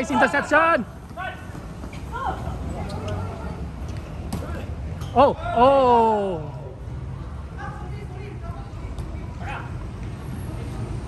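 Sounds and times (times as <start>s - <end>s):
players shouting: 0.0s - 3.6s.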